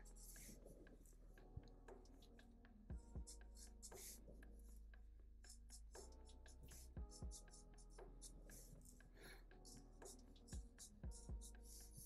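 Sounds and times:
marker scratching on paper: 3.8s - 4.2s.

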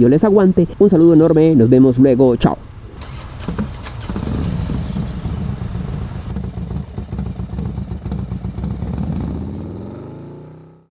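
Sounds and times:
street traffic: 2.4s - 10.9s
motorcycle engine idling: 3.0s - 10.8s.

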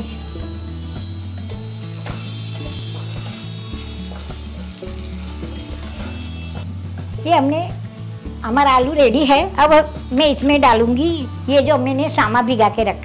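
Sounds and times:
potatoes sizzling in oil: 0.0s - 12.9s
wooden spatula scraping wok: 1.5s - 7.2s.

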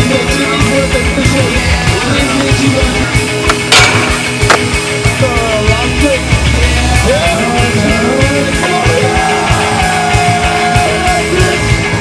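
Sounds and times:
rock music: 0.0s - 12.0s
skateboard clacking on ground: 2.2s - 4.8s.

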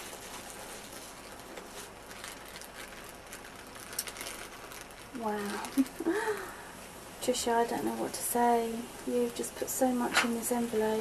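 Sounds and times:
paper envelope and plastic bag rustling: 0.0s - 6.6s.

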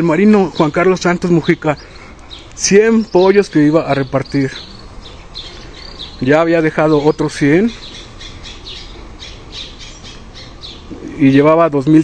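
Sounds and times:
bird squawking: 0.0s - 11.7s
low steady hum: 0.0s - 12.0s.

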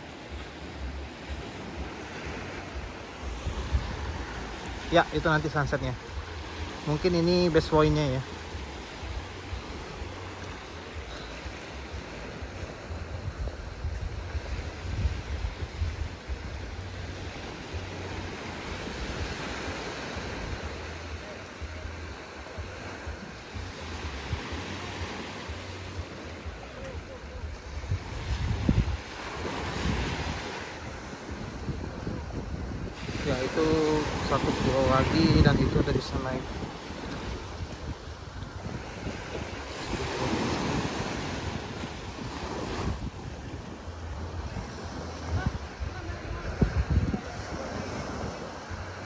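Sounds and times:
waves washing over sandy beach: 0.0s - 49.0s
wind buffeting microphone: 0.8s - 4.9s, 12.4s - 17.9s, 27.4s - 49.0s.

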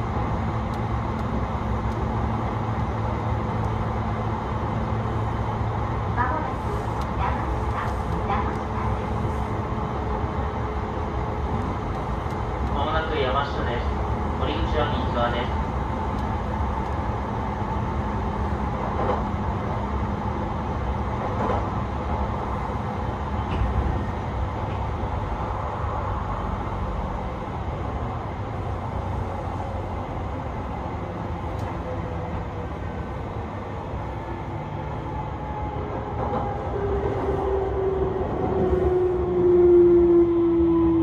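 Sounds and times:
train wheels rumbling: 0.0s - 41.0s.

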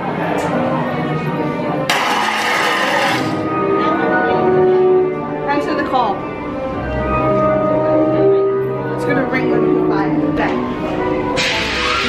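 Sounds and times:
eerie music: 0.0s - 12.0s.

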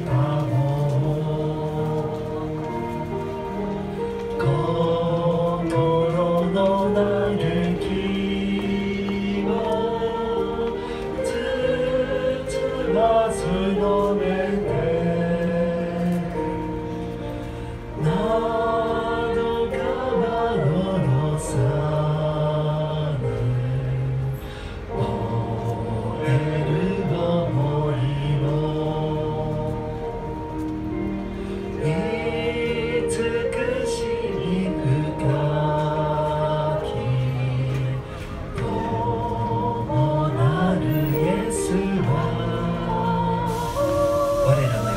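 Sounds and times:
group singing a hymn: 0.0s - 44.9s.

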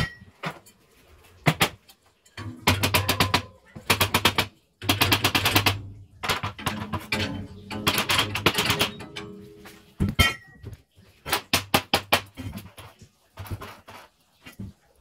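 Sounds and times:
window frame rattling and knocking: 2.4s - 9.4s.

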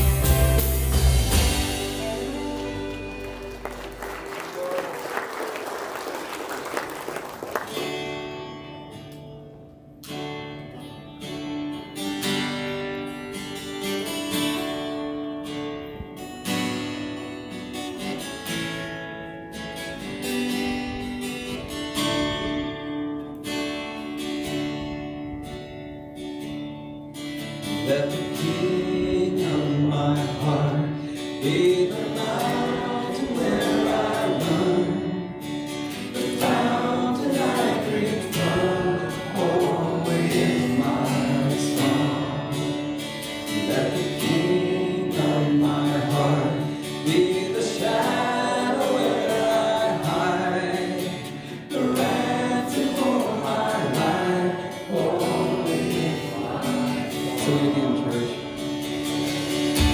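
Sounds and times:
strummed acoustic guitar chords: 0.0s - 4.4s, 7.6s - 59.9s
keyboard: 0.0s - 4.7s
electric guitar: 0.0s - 59.9s
person singing: 1.3s - 3.6s, 27.8s - 35.4s, 36.0s - 42.8s, 43.6s - 58.5s.

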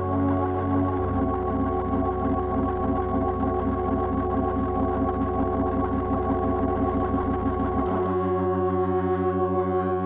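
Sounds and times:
held keyboard chord: 0.0s - 10.0s
organ and synthesizer chord: 0.0s - 10.0s.

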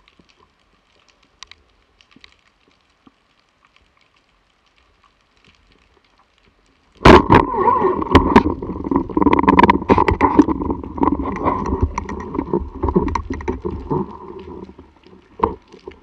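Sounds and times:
speargun firing crack: 7.0s - 7.5s.

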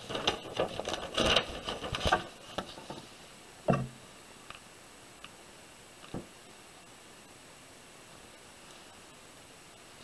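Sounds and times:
paper pages turning: 0.0s - 3.1s.

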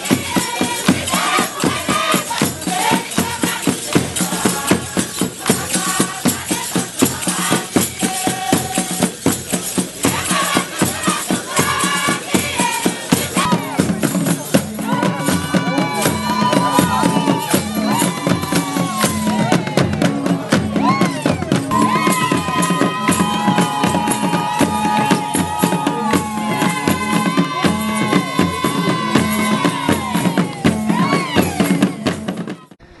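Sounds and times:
rattling percussion: 0.0s - 32.8s
steady drum beat: 0.0s - 32.8s
high singing voices: 0.0s - 33.0s.

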